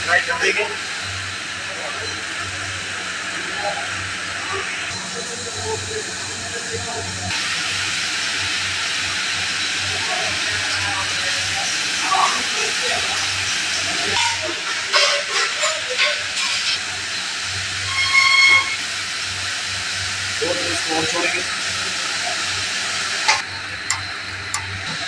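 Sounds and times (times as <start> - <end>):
chicken deep-frying in oil: 7.3 - 25.0.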